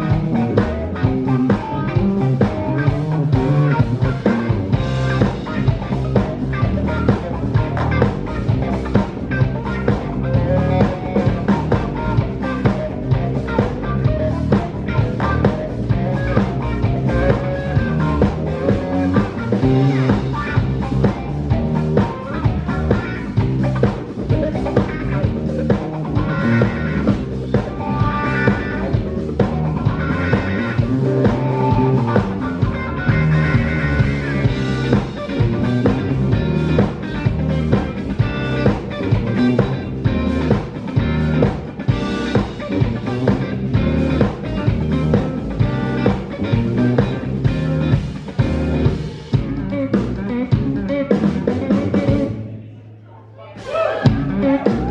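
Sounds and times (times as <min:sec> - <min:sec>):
drum kit beat: 0:00.0 - 0:52.4, 0:53.6 - 0:54.9
electric guitars: 0:00.0 - 0:52.8, 0:53.6 - 0:54.9.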